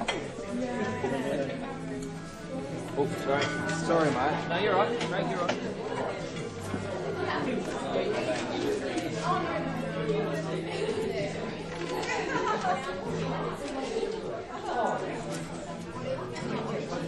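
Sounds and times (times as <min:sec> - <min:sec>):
many people chatting: 0:00.0 - 0:17.0.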